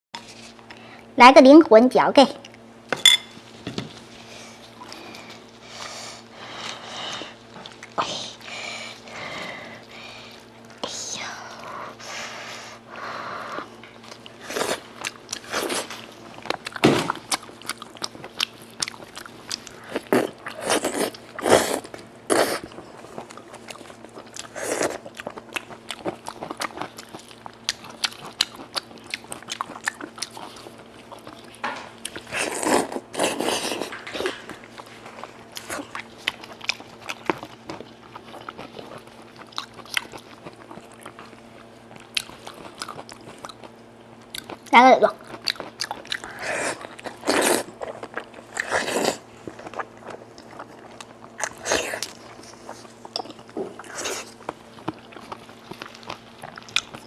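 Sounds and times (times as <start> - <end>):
faint steady hum: 0.2 - 57.0
chewing and lip smacking: 14.0 - 22.0, 22.6 - 57.0.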